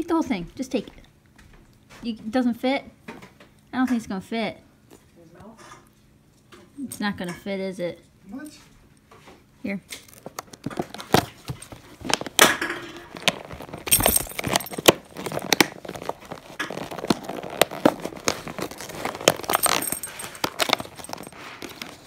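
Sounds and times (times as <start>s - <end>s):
wrapping paper tearing and crumpling: 10.0s - 22.0s.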